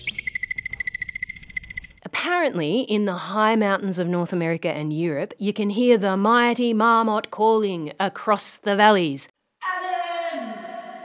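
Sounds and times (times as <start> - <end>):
groundhog alarm whistle and trill: 0.0 - 2.0.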